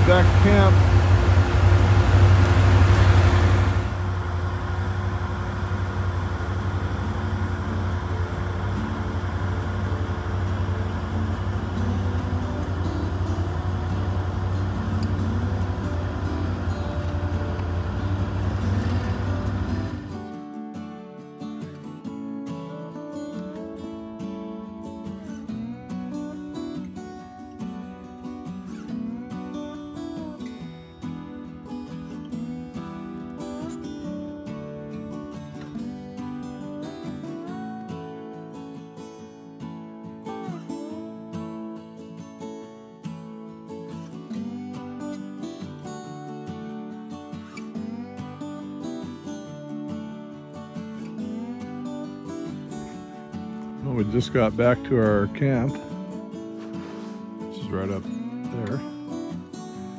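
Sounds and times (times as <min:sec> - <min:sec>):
engine running steadily: 0:00.0 - 0:20.3
acoustic guitar music: 0:00.0 - 0:59.9.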